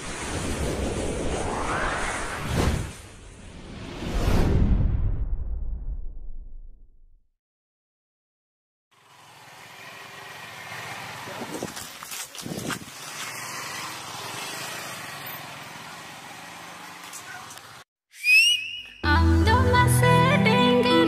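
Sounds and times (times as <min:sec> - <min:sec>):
outdoor background noise: 0:08.9 - 0:17.9
loud rising whistle: 0:18.1 - 0:19.2.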